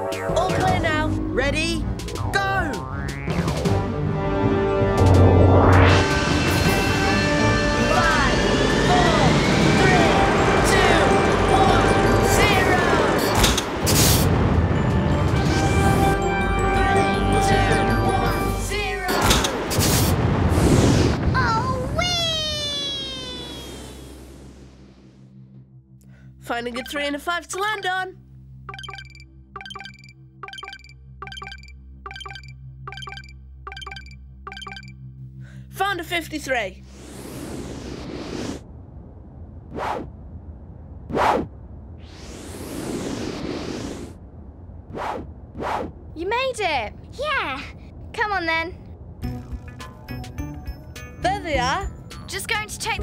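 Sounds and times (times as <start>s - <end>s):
loud rushing whoosh: 4.8s - 7.6s, 36.8s - 46.2s
cartoon whoosh effects: 19.8s - 24.3s.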